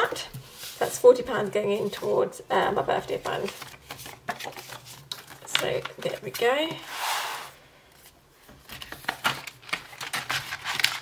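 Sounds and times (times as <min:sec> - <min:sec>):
plastic sleeves and paper rustling: 0:00.0 - 0:11.0.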